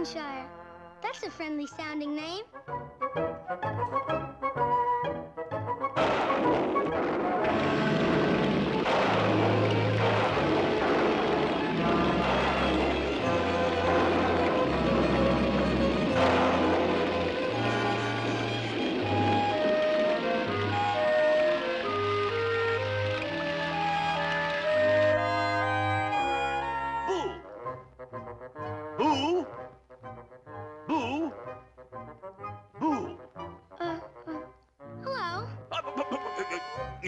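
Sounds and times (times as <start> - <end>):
orchestral cartoon music: 0.0 - 37.0
heavy rain downpour: 7.2 - 25.7.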